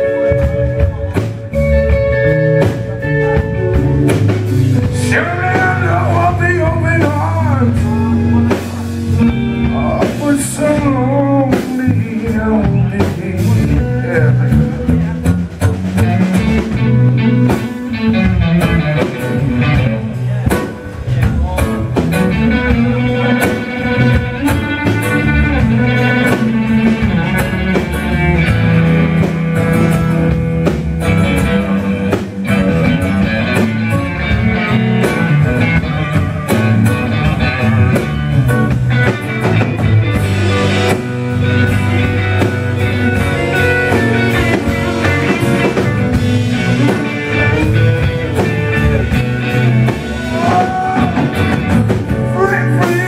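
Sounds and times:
bass line: 0.0s - 53.0s
drum kit: 0.0s - 53.0s
electric guitar: 0.0s - 53.0s
man singing: 4.8s - 15.3s, 50.0s - 53.0s.

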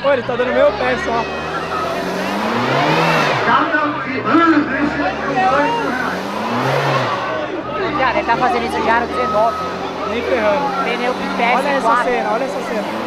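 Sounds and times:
people shouting: 0.0s - 3.7s, 5.0s - 13.0s
car engine revving: 0.0s - 13.0s.

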